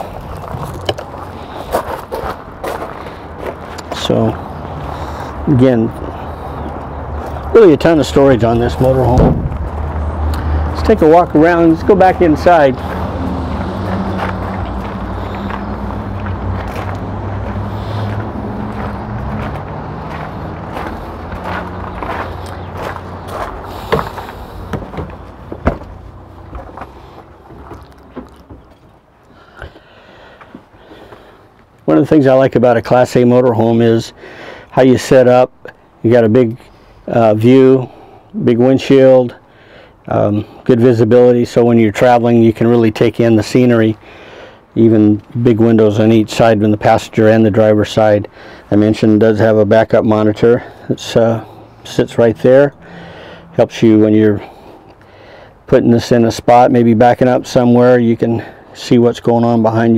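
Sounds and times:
footsteps: 0.0 - 5.4, 11.6 - 29.0
sharp knocks: 23.9 - 26.7
storage door knocks and rustles: 24.7 - 26.0.

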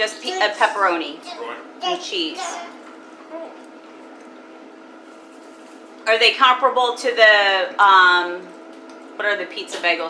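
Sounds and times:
room hum with steady tones: 0.0 - 10.0.

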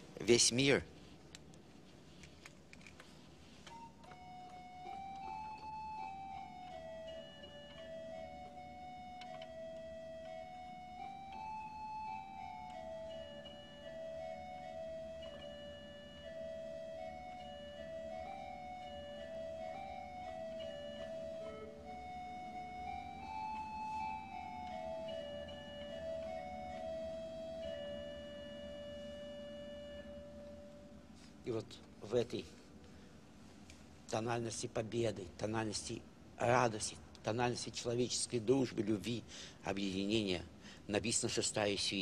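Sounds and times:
slow organ melody: 2.1 - 32.8.

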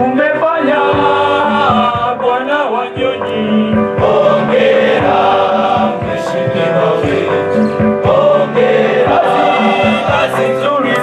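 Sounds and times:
choir singing in harmony: 0.0 - 11.0.

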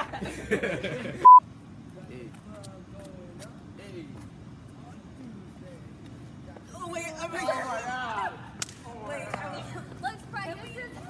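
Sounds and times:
people's voices: 2.0 - 11.0
sharp crack: 8.6 - 8.9.

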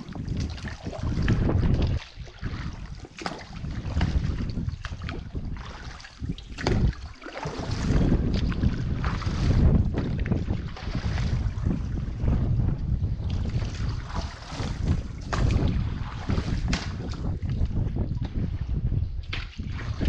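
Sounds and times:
water sloshing against dinghy: 0.0 - 20.0
wind buffeting microphone: 0.0 - 20.0.

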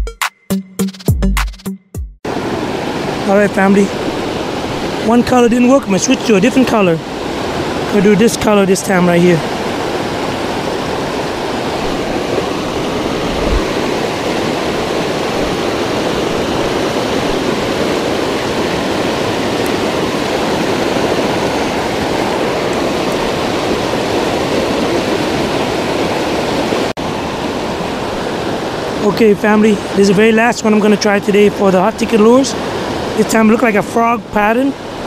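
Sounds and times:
river rushing over rapids: 2.3 - 35.0.

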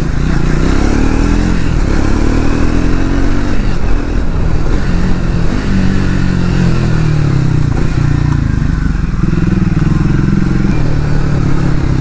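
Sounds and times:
motorcycle engine and exhaust: 0.0 - 12.0.

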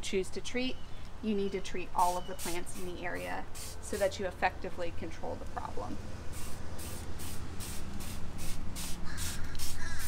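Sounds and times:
trigger sprayer hissing: 2.4 - 4.2, 6.3 - 10.0.

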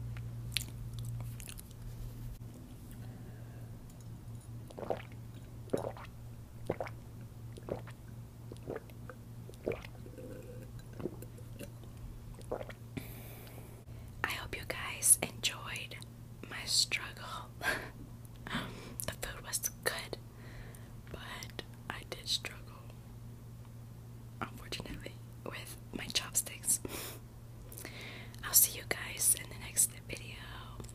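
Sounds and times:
woman whispering: 14.2 - 17.5, 19.0 - 20.2, 21.1 - 23.0, 24.4 - 26.8, 28.4 - 30.9.

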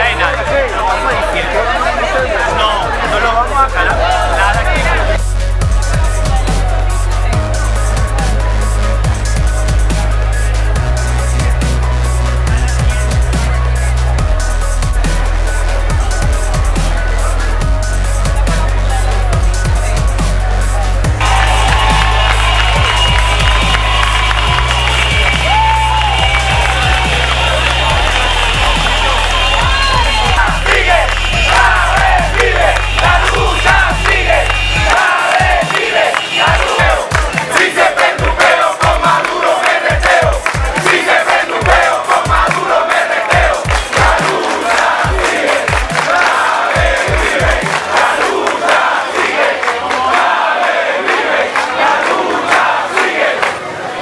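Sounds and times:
steady low thumping beat: 0.0 - 48.6
electronic music with heavy bass: 0.0 - 48.9
crowd shouting and chanting: 0.0 - 54.0.

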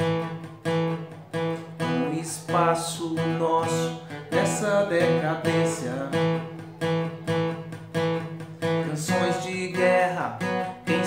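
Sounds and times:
acoustic guitar strumming: 0.0 - 11.0.

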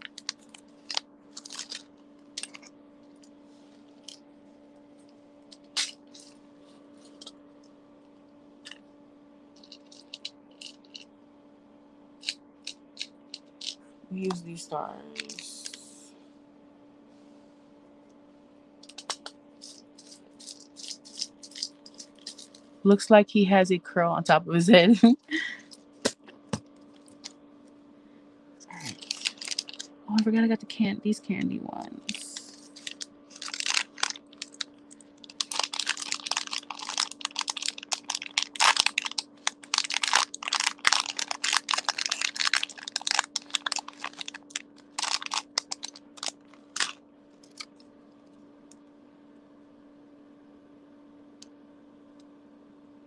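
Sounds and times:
plastic beads rattling: 0.0 - 2.7, 9.6 - 11.0, 12.2 - 13.8, 18.8 - 22.6, 28.8 - 29.9, 32.1 - 47.7.

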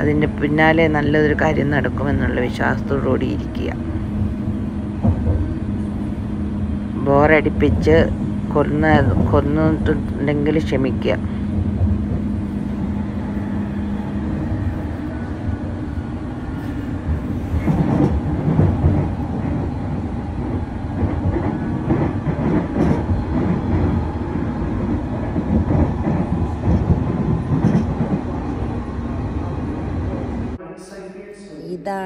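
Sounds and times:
train wheels clattering on rails: 0.0 - 5.9, 7.4 - 14.8, 16.6 - 28.8.

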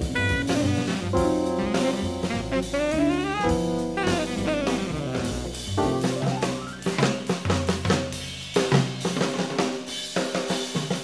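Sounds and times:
pitched instrument notes: 0.0 - 7.1
jazz drum kit: 0.0 - 11.0.

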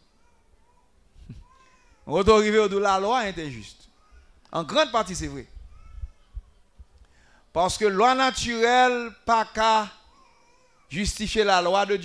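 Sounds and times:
faint high-pitched vocal sound: 0.1 - 2.1, 3.9 - 4.5, 5.5 - 6.6.

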